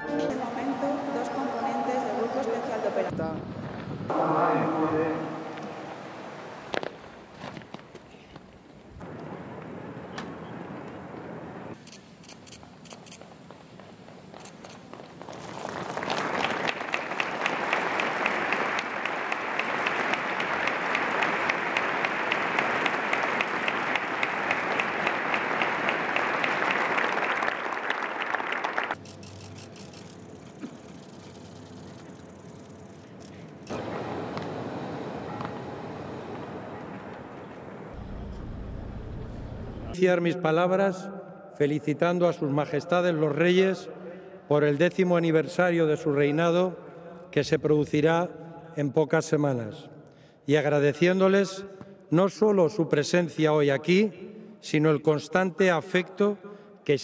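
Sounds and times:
crowd applauding: 0:15.5 - 0:29.0, 0:33.7 - 0:38.4.

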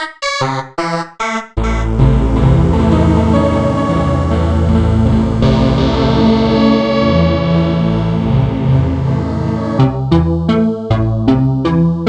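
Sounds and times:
synthesizer sharp repeated notes: 0:00.0 - 0:12.0
synthesizer pad chords: 0:00.2 - 0:12.0.

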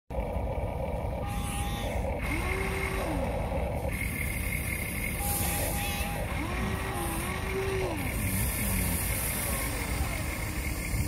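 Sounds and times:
small electric motors whining: 0:01.2 - 0:11.0.

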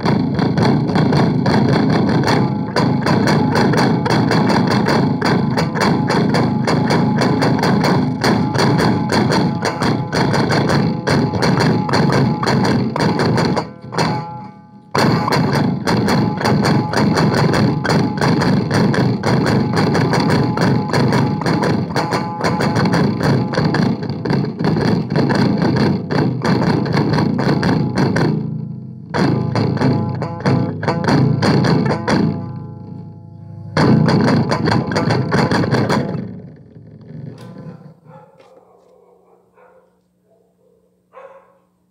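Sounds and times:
fast electric guitar playing: 0:00.0 - 0:37.7.

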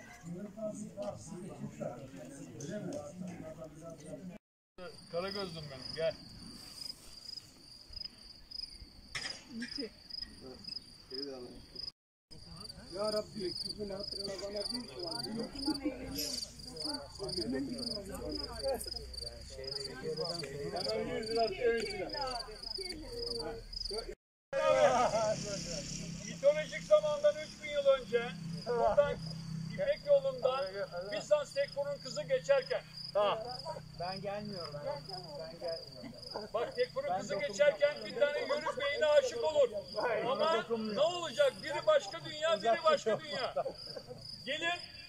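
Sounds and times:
crickets chirping: 0:04.8 - 0:45.0
people talking: 0:12.4 - 0:29.2, 0:29.8 - 0:44.9.

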